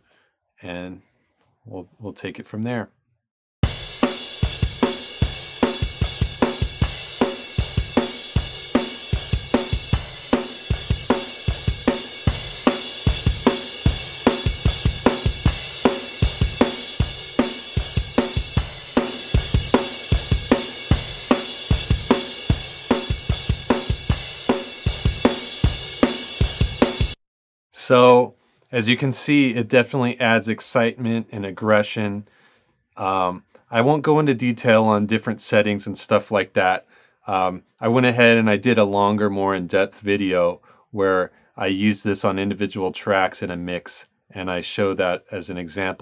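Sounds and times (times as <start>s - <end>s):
drum kit beat: 3.6s - 27.2s.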